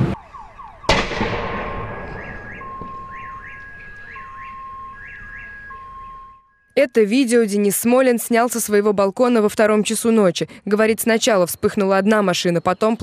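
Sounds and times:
tyre bursting bang: 0:00.9 - 0:03.5
car alarm chirps and whoops: 0:02.0 - 0:06.7.

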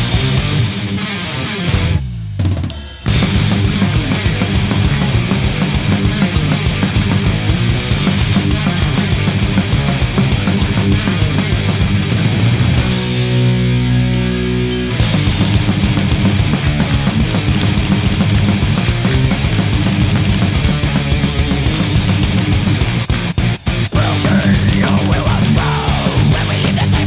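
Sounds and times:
death thrash metal song: 0:00.0 - 0:27.0.

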